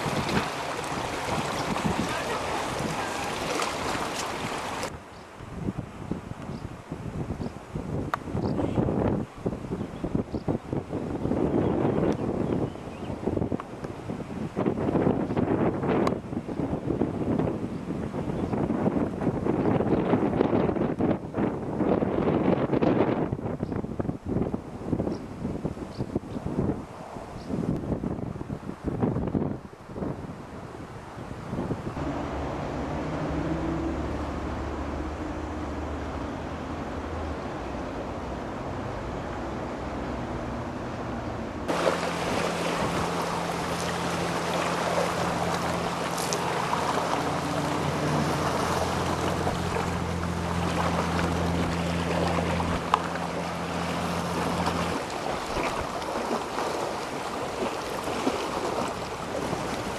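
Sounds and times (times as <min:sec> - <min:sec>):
wind buffeting microphone: 0:00.0 - 0:59.9
low drone hum: 0:32.0 - 0:55.1.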